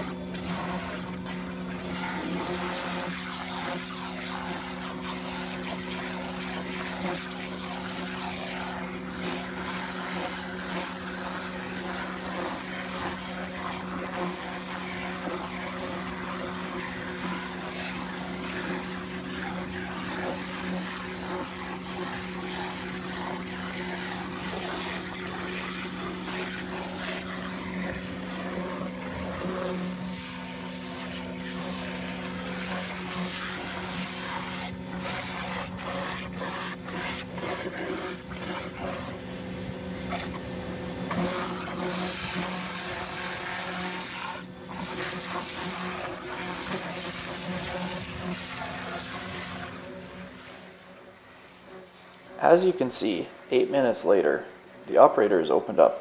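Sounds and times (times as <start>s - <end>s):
high-pressure water hissing: 0.0s - 54.4s
mud slurry sucked up hose: 0.0s - 54.5s.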